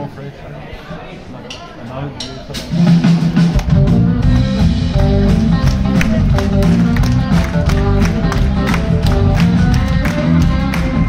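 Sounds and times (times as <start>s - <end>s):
live rock band playing: 2.6s - 11.0s.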